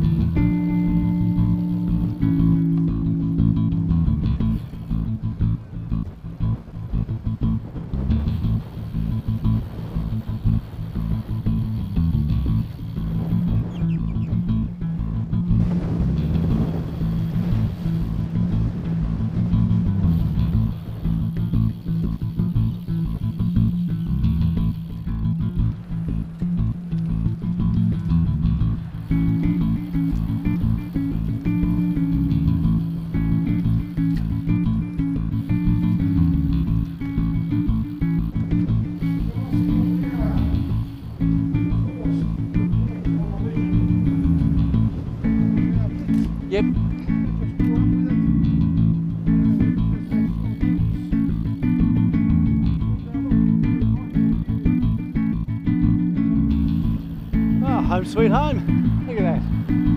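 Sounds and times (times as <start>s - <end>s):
guitar and bass music: 0.0s - 59.9s.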